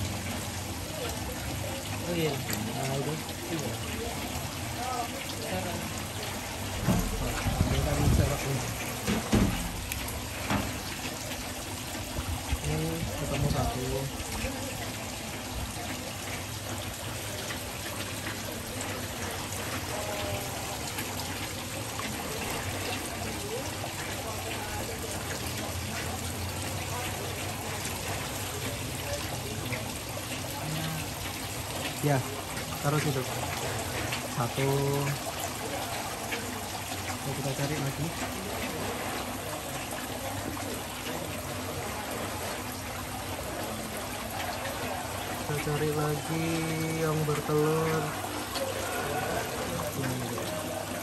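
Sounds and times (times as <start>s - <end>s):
water trickling: 0.0s - 51.0s.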